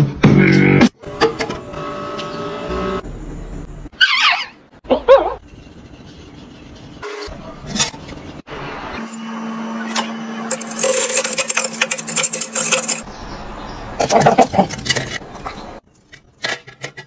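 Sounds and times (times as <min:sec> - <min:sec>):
wire whisk scraping a pot: 0:10.5 - 0:13.1.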